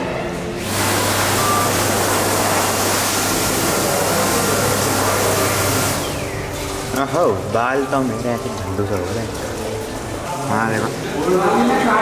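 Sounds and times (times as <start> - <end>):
electric hand dryer blowing: 0.6 - 8.0.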